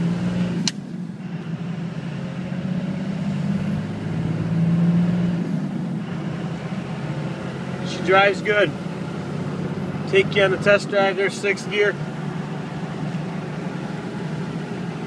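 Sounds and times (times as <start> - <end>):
diesel truck engine drone: 0.0 - 15.0.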